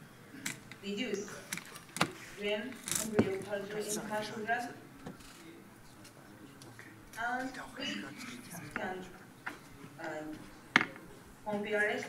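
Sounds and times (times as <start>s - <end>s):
murmur of voice: 0.0s - 12.0s.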